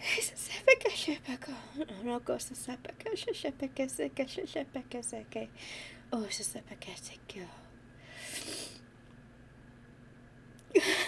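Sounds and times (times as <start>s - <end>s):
woman laughing softly: 10.7s - 11.0s.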